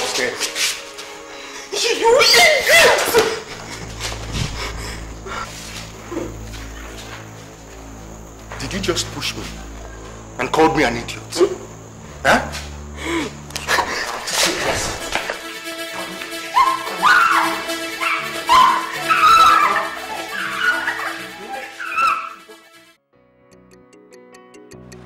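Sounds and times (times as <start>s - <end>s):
background music: 0.0s - 25.0s
people shouting and crying out: 1.6s - 5.5s, 16.1s - 22.6s
woman wailing in pain: 16.6s - 22.5s.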